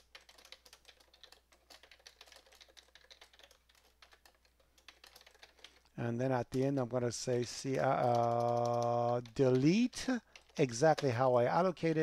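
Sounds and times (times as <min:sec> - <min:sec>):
computer keyboard typing: 0:00.0 - 0:12.0.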